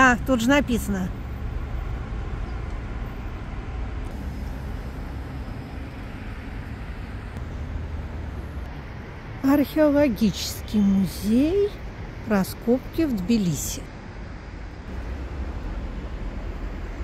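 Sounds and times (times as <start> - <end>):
distant road traffic rumble: 0.0 - 17.0.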